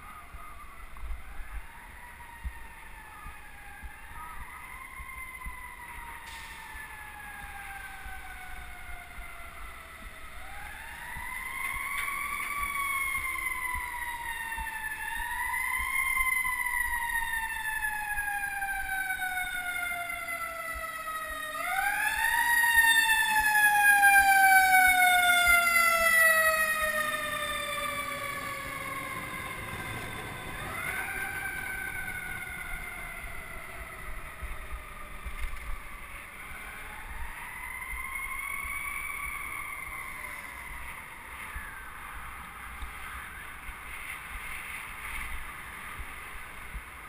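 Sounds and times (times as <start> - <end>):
mechanical siren wailing: 0.0 - 44.4
street traffic: 0.0 - 47.0.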